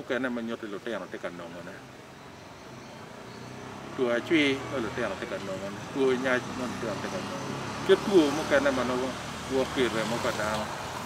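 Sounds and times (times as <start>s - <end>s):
man speaking: 0.0s - 1.8s, 3.9s - 10.7s.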